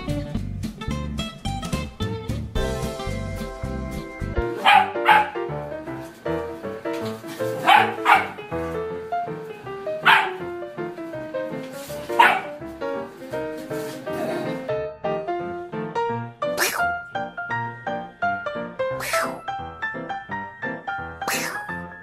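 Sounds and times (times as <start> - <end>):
background music: 0.0 - 22.0
dog barking: 4.6 - 5.5, 7.6 - 8.4, 10.0 - 10.5, 12.1 - 12.6, 16.6 - 16.9, 19.0 - 19.5, 21.2 - 21.7.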